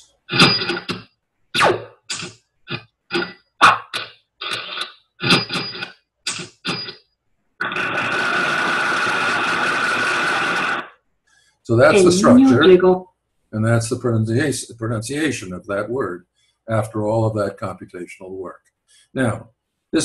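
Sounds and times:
steady noisy sound effect: 7.6 - 10.9.

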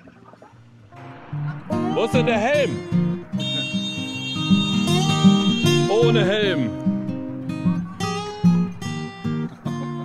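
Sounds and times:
guitar background music: 0.3 - 10.0.

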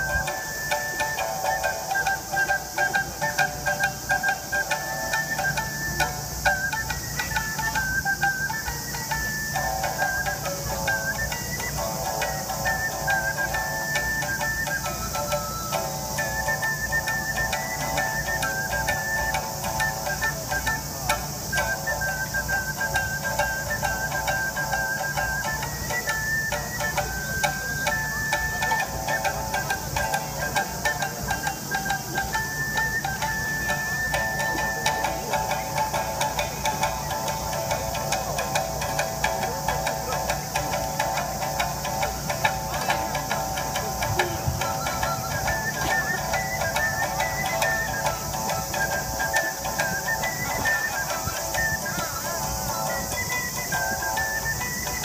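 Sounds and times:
ocarina melody: 0.0 - 55.0
plucked shamisen: 0.0 - 55.0.

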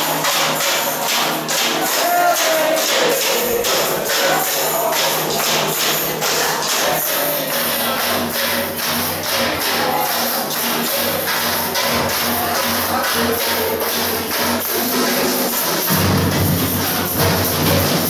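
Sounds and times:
percussion band playing: 0.0 - 18.0.

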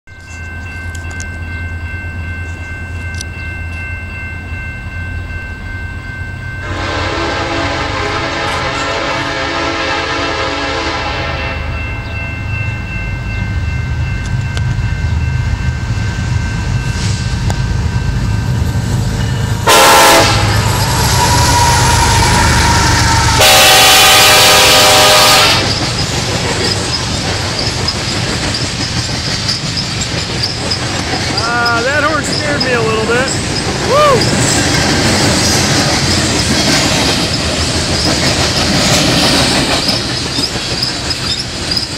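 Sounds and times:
diesel locomotive rumble: 0.2 - 41.9
train air horn blasts: 6.6 - 11.8, 19.6 - 25.8
freight cars rumbling past: 14.8 - 24.8.

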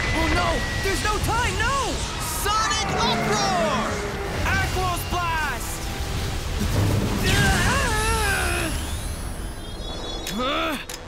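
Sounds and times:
high ringing electronic tone: 8.2 - 10.9.

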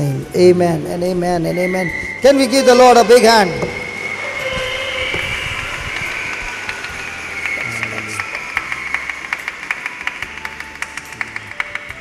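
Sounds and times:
audience clapping: 3.7 - 12.0
sharp hand claps: 5.1 - 12.0.

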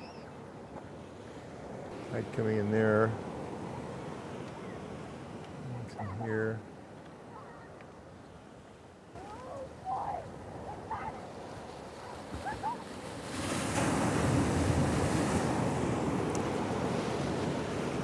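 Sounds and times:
ocean surf breaking on rocks: 1.1 - 7.4, 9.1 - 18.0.

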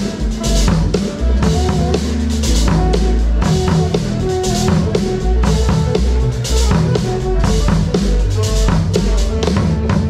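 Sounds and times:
drum kit beat: 0.0 - 10.0
live funk band playing: 0.0 - 10.0.

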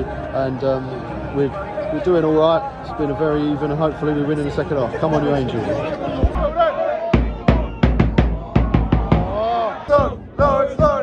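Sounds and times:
crowd chanting: 4.8 - 11.0
drum beaten quickly: 6.2 - 11.0.

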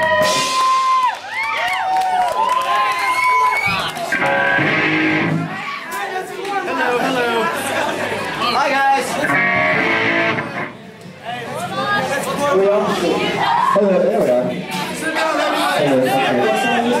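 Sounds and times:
crowd chatter and shouting: 0.0 - 17.0
electric guitar chords: 4.1 - 5.6, 9.2 - 10.8.

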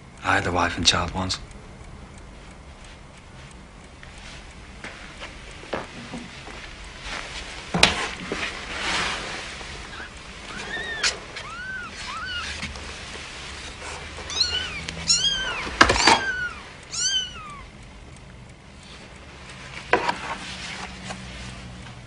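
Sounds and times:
cat meowing: 9.9 - 12.6, 14.3 - 17.7.

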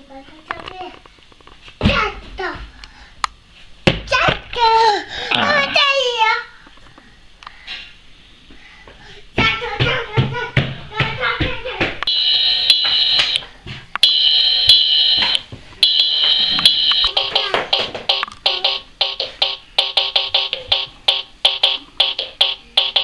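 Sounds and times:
short electronic beats: 14.0 - 23.0.

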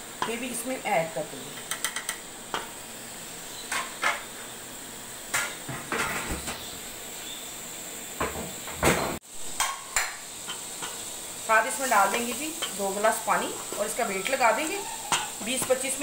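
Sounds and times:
meat sizzling: 0.0 - 16.0.

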